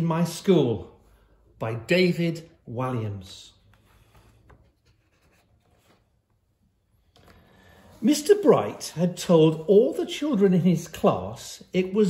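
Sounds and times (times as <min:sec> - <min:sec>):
book pages rustling: 0:03.6 - 0:08.4.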